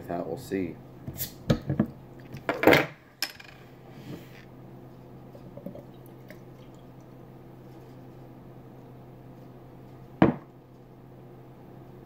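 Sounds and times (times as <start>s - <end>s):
metal clatter on table: 2.4s - 3.6s.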